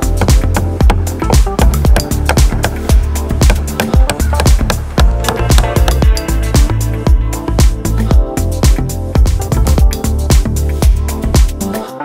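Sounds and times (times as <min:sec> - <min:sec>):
background music with beat and bass: 0:00.0 - 0:12.0.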